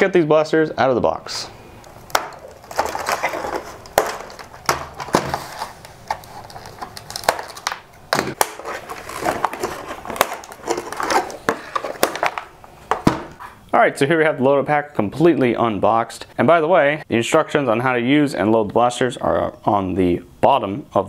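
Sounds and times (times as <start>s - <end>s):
cardboard and plastic rustling: 2.0s - 13.5s.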